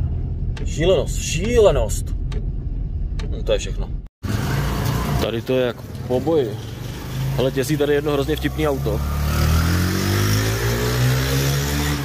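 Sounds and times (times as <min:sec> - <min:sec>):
motorcycle engine accelerating past: 0:09.0 - 0:12.0.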